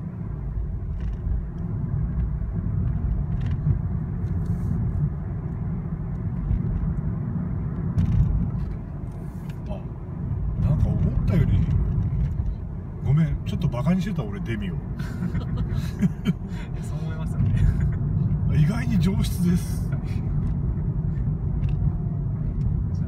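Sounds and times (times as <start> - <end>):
car engine and road rumble: 0.0 - 23.0.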